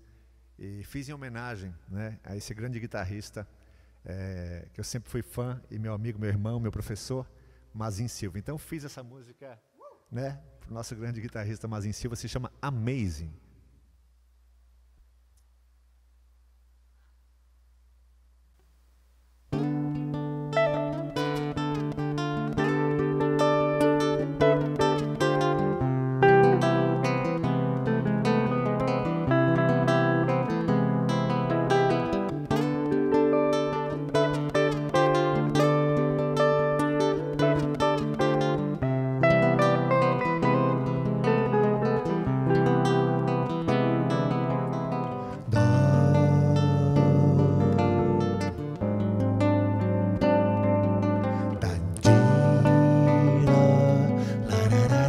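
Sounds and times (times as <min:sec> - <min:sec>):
acoustic guitar: 0:19.5 - 0:55.0
electric guitar: 0:19.5 - 0:55.0.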